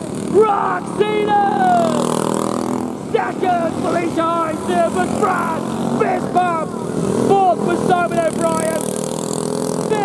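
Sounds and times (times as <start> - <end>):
go-kart engines running: 0.0 - 10.0
man shouting: 0.3 - 2.1, 3.1 - 8.8.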